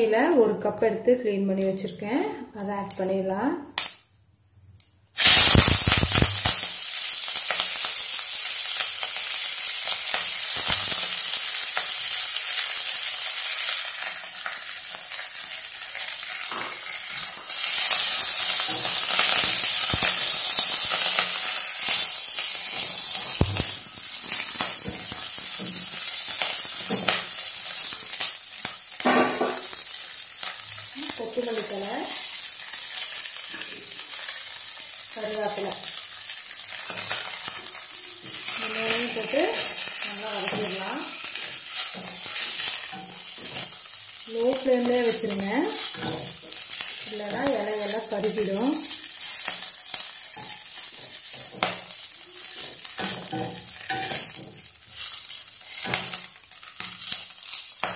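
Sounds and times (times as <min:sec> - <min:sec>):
leaves frying in hot oil: 0:05.2 - 0:57.9
spatula scraping pan: 0:36.8 - 0:43.8.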